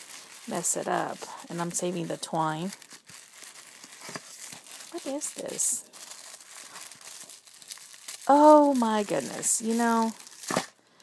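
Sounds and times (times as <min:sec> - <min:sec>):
paper wrapping crinkling: 0:00.0 - 0:10.8.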